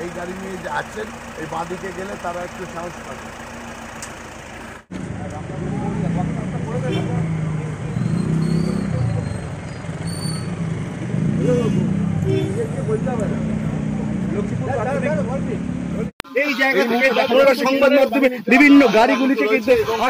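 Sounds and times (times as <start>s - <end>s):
men talking: 0.0s - 3.3s, 5.1s - 9.6s, 11.4s - 20.0s
low vehicle engine hum: 0.0s - 16.2s.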